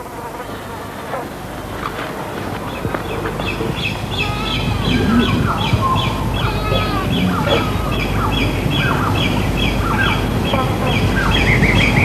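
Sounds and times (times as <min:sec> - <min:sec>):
steady low hiss: 0:00.0 - 0:12.0
bird twittering: 0:02.7 - 0:12.0.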